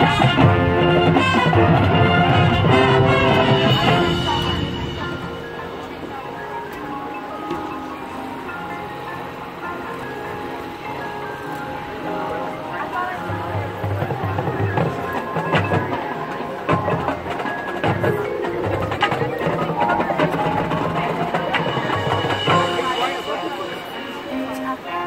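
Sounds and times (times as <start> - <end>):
brass chords: 0.0 - 25.0
drums: 0.0 - 25.0
mallet percussion: 0.0 - 25.0.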